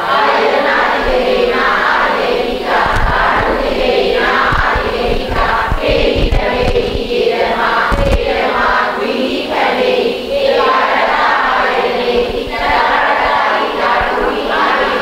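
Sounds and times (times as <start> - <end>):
voices chanting in unison: 0.0 - 15.0.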